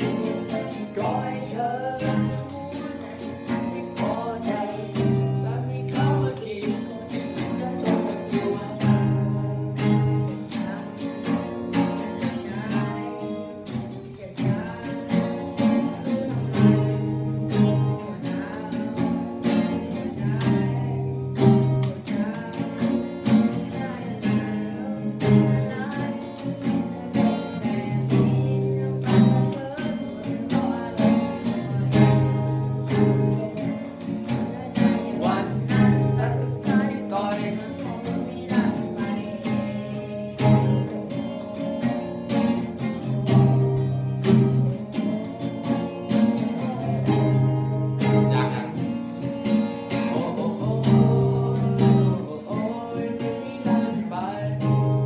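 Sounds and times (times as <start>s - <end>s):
fingerstyle acoustic guitar: 0.0s - 55.0s.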